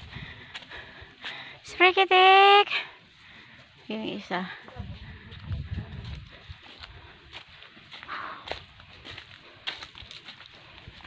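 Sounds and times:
footsteps through grass and leaves: 0.0s - 11.0s.

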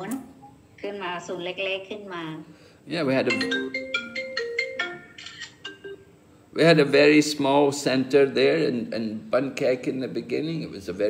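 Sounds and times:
marimba-like phone ringtone: 3.2s - 6.1s.

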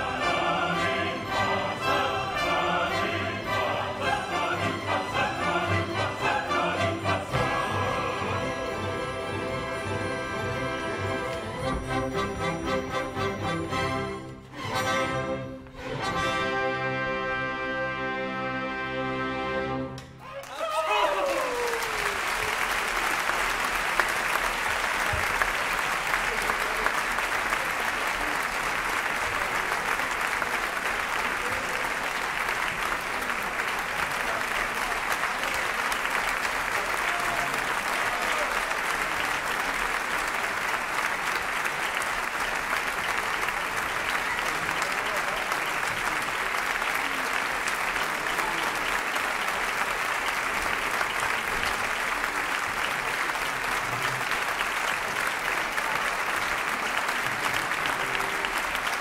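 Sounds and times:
audience applauding: 20.0s - 59.0s
person shouting: 20.2s - 21.8s.

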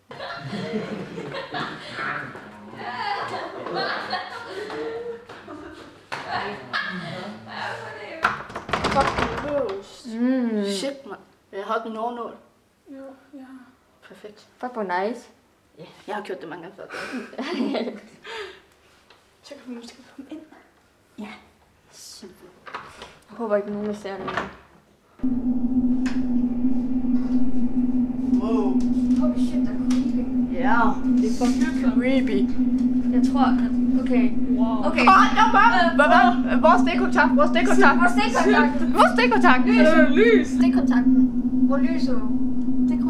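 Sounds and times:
low rumble: 25.2s - 43.0s
steady low hum: 25.2s - 43.0s
person speaking: 28.4s - 41.0s.

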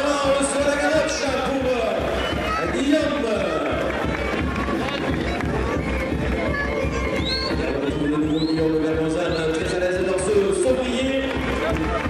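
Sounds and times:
music: 0.0s - 12.0s
spectators' voices: 0.0s - 12.0s.

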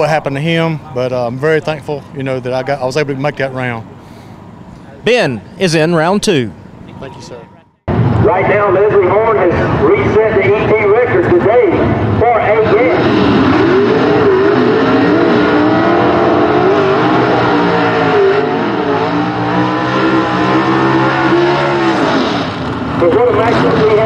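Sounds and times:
race car engines revving: 0.0s - 24.0s.

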